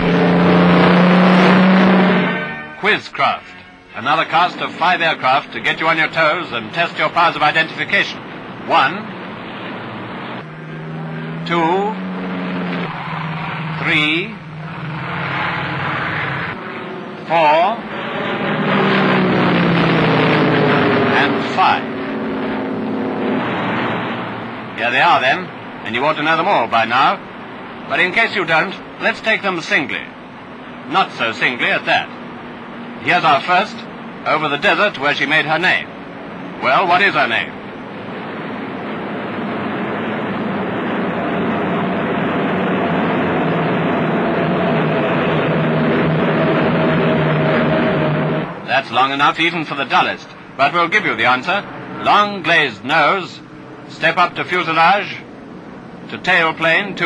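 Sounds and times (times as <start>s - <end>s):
propeller plane engines droning: 0.0s - 57.0s.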